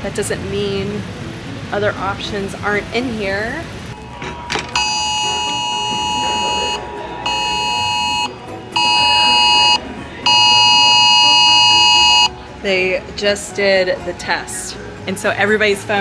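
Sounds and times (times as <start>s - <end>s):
two-tone emergency alert blare: 4.8s - 12.3s.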